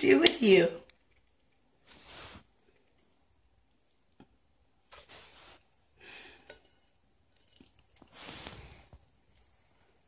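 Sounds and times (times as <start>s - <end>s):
soft breathy noises: 5.1s - 6.6s, 8.1s - 10.0s.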